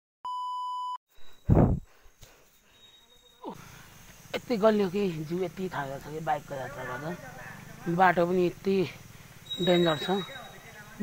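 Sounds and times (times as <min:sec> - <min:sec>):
steady test-tone beep: 0:00.3 - 0:01.0.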